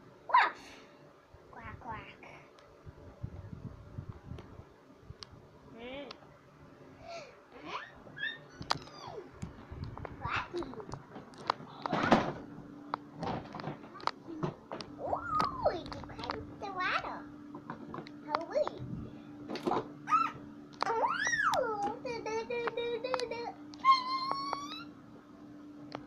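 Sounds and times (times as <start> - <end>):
steady low hum: 0.0 - 26.0
child making playful calls: 7.6 - 9.3, 20.0 - 24.9.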